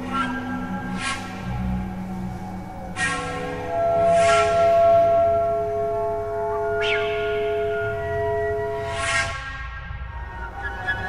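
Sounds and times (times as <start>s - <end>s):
ambient electronic music: 0.0s - 11.0s.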